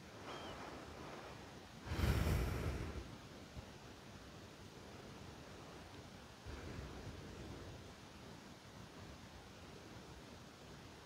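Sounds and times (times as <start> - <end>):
faint steady hiss: 0.0 - 11.0
faint high chirp: 0.2 - 0.7.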